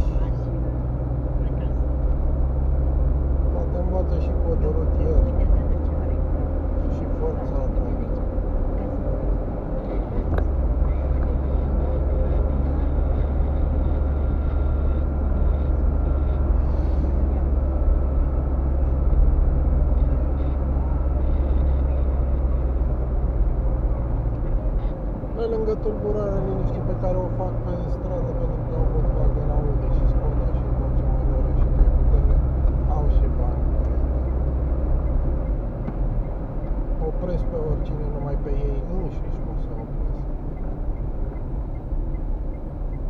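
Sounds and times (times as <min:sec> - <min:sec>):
car tyres and engine rumble: 0:00.0 - 0:43.0.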